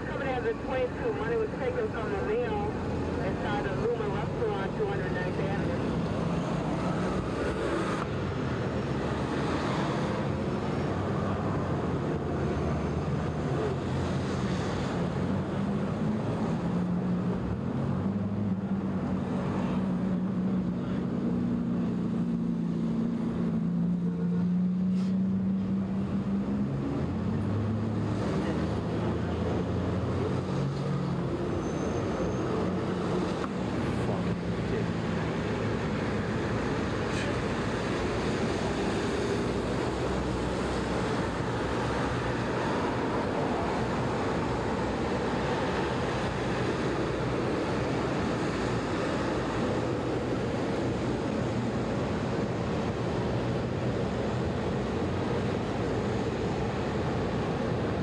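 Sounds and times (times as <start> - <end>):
traffic engines rumbling: 0.0 - 58.0.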